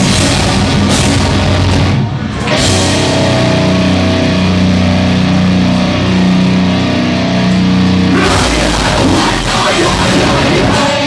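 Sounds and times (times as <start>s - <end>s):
distorted guitars and bass: 0.0s - 11.0s.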